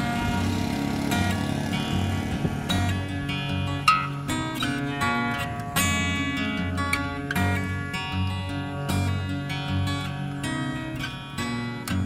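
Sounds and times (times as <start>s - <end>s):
low pulsing bass: 0.0s - 4.6s
acoustic guitar music: 0.0s - 12.0s.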